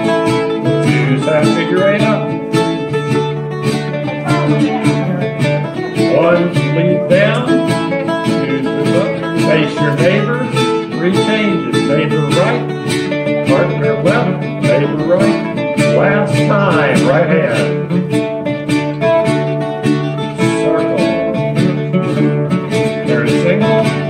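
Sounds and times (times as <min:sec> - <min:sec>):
acoustic band playing dance tune: 0:00.0 - 0:24.0.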